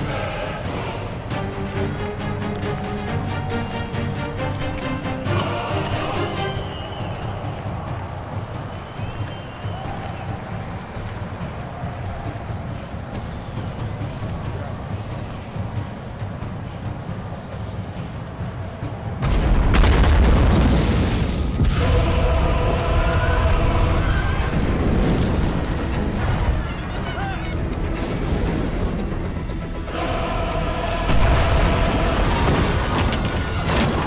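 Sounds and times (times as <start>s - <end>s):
film background score: 0.0s - 34.0s.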